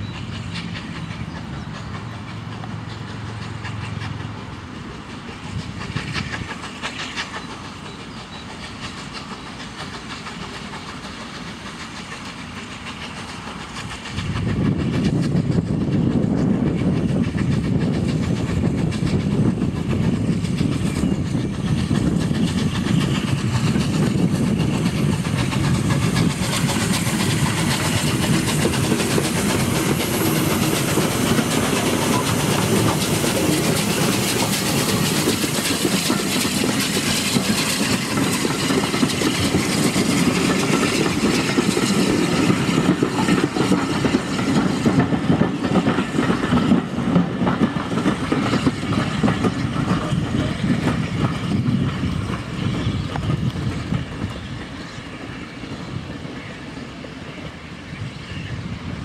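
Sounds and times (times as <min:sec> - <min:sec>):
steam locomotive running past: 0:00.0 - 0:59.0.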